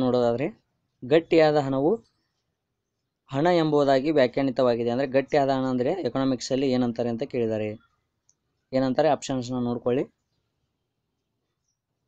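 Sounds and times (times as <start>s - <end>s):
man speaking: 0.0s - 2.1s, 3.3s - 7.9s, 8.7s - 10.2s.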